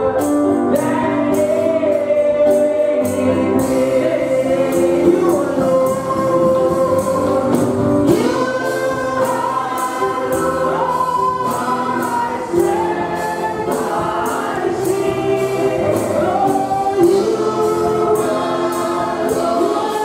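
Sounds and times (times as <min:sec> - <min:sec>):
voices singing along: 0:00.0 - 0:20.0
steady percussion beat: 0:00.2 - 0:20.0
woman singing gospel through microphone: 0:00.6 - 0:20.0.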